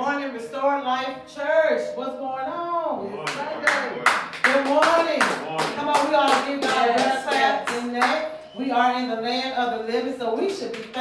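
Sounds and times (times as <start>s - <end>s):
woman's voice: 0.0s - 3.9s, 4.5s - 11.0s
hands clapping in rhythm: 3.2s - 8.3s, 10.6s - 11.0s.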